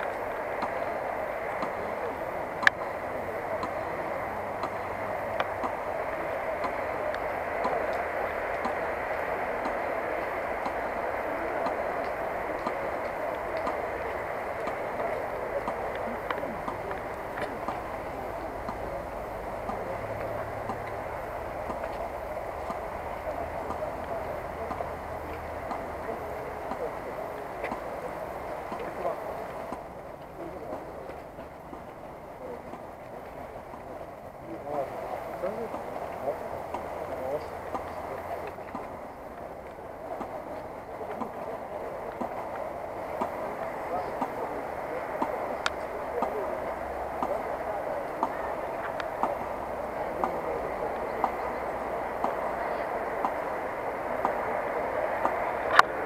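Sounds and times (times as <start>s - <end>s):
crowd murmur: 0.0s - 56.0s
slow even ticking: 0.0s - 56.0s
steady low rumble: 0.0s - 56.0s.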